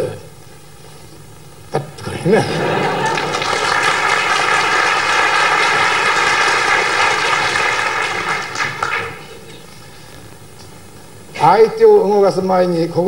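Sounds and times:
audience applauding: 2.5 - 9.5.

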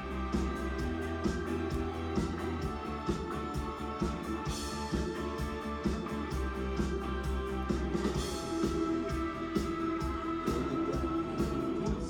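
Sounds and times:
drum kit beat: 0.0 - 12.0
keyboards: 0.0 - 12.0
live rock band playing: 0.0 - 12.0.

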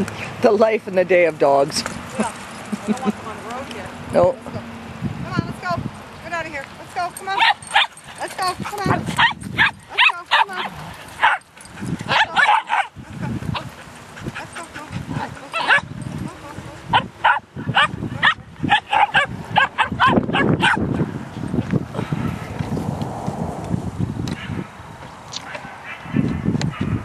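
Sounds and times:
dogs barking and yipping: 7.0 - 22.5, 25.4 - 27.0.

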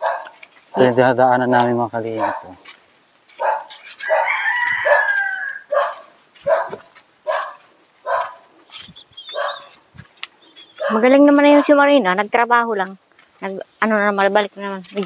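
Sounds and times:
footsteps on dirt path: 0.0 - 15.0
rooster crowing: 3.9 - 6.1.

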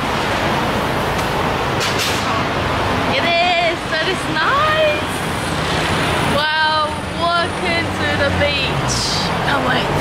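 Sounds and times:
cars and motorbikes passing: 0.0 - 10.0.

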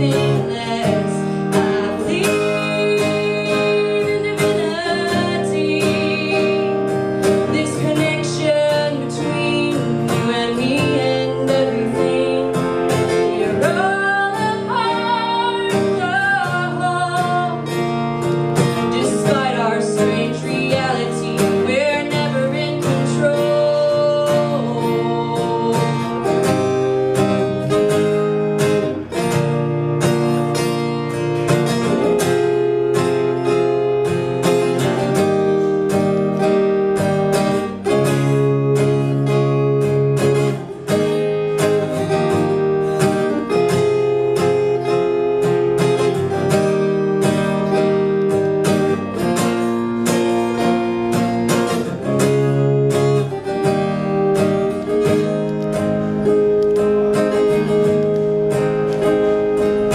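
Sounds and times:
woman singing: 0.0 - 28.2
acoustic guitar strumming: 0.0 - 59.9.

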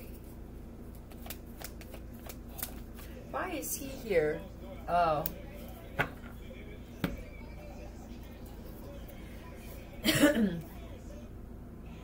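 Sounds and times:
cards being shuffled: 0.9 - 3.1.

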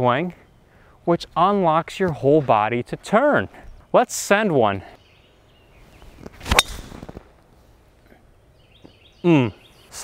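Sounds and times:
golf driver striking ball: 6.4 - 7.0.

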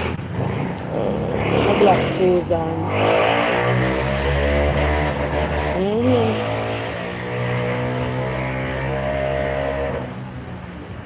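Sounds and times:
vehicle engine hum: 0.0 - 11.0.

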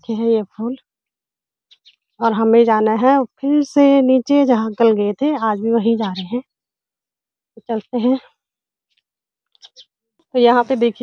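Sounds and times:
woman speaking: 0.0 - 0.8, 2.2 - 6.5, 7.6 - 8.3, 10.4 - 11.0.

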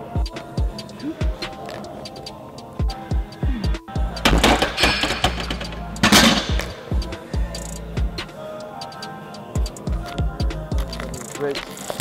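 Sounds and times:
music with deep thudding beat: 0.0 - 12.0
barbell plates rattling and clanking: 4.2 - 6.8.

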